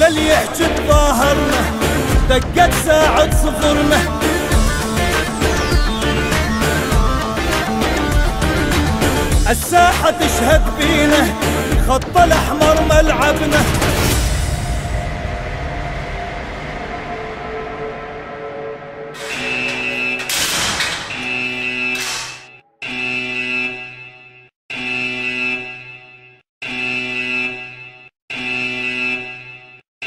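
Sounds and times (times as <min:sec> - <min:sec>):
harsh buzzing alarm: 0:19.2 - 0:29.9.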